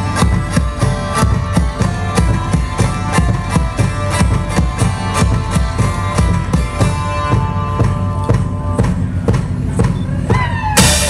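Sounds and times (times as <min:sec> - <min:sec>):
drum beats: 0:00.0 - 0:11.0
hurdy-gurdy drone and melody: 0:00.0 - 0:11.0.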